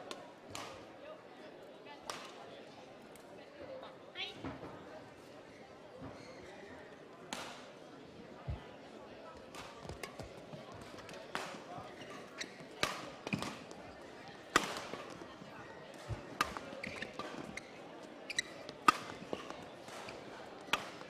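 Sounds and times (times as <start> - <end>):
shoes squeaking on court floor: 5.4 - 6.9, 11.8 - 21.0
rackets hitting shuttlecock: 12.4 - 13.8, 14.4 - 15.2, 16.0 - 17.7, 18.3 - 21.0.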